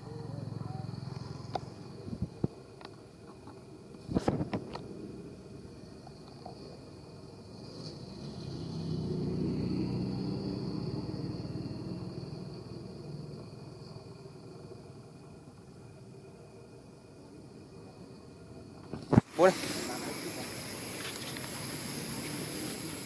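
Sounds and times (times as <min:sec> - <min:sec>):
high insect drone: 0:00.0 - 0:23.0.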